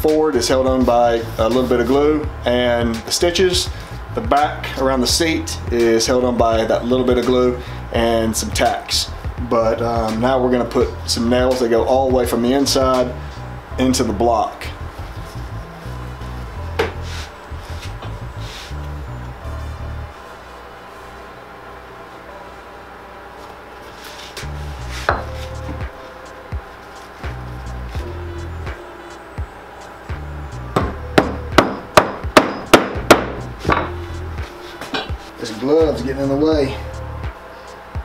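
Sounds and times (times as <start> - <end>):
hammer striking nails: 30.8 - 33.9.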